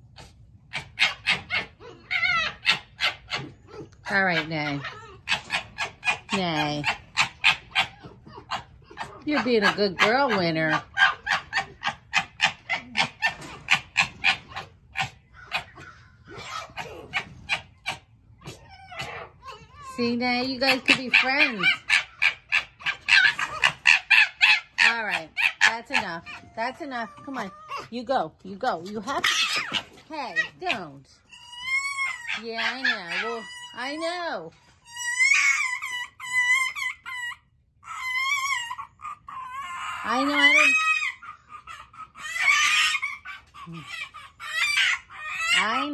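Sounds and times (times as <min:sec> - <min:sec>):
foxes chattering calls: 0:00.0 - 0:45.9.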